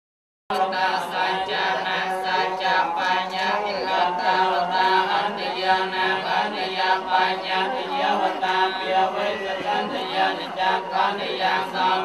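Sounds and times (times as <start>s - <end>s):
men chanting in unison: 0.5s - 12.0s.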